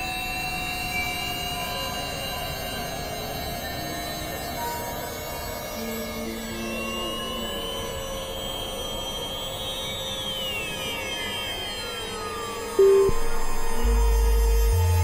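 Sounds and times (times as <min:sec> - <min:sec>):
loud sustained synth note: 0:12.8 - 0:15.0
synthesizer drone music: 0:12.8 - 0:15.0.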